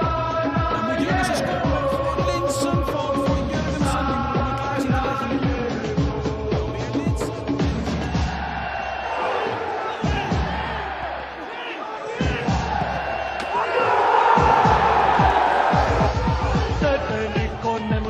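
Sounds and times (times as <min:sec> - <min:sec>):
music with heavy drum beat: 0:00.0 - 0:08.7, 0:10.0 - 0:10.8, 0:12.2 - 0:13.5, 0:14.3 - 0:18.0
stadium crowd noise: 0:06.6 - 0:18.0.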